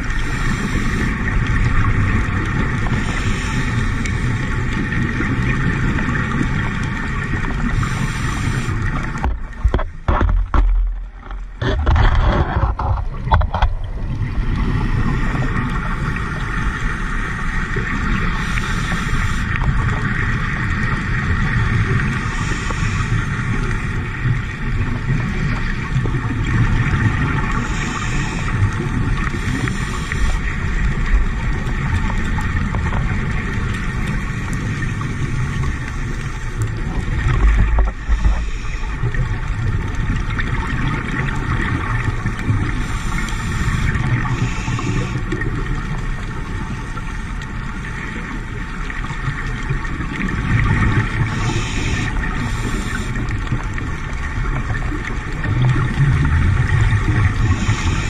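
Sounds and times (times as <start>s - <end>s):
low drone of boat engines: 0.0s - 58.0s
underwater bubbling hiss: 0.0s - 58.0s.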